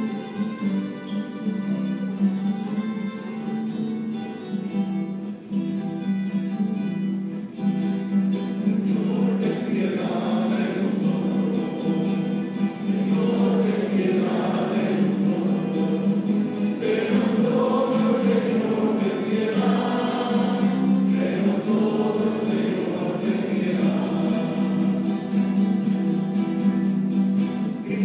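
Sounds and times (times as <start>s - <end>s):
church choir singing a hymn: 8.5s - 26.7s, 27.6s - 28.0s.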